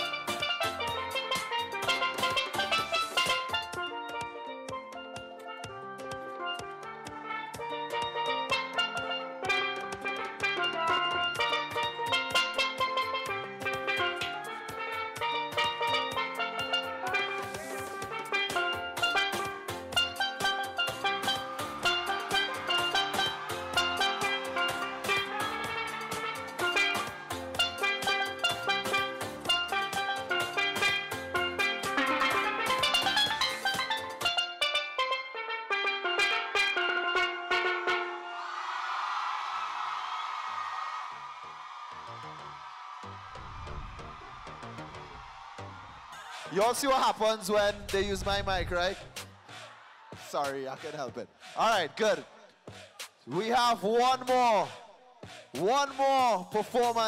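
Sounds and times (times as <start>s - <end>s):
bass and drums accompaniment: 0.0s - 35.1s, 47.4s - 49.6s
steelpan melody: 0.0s - 38.3s.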